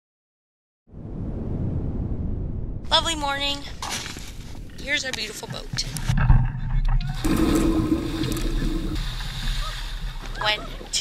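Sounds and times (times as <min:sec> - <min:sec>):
water splashing and rushing: 0:05.8 - 0:11.0.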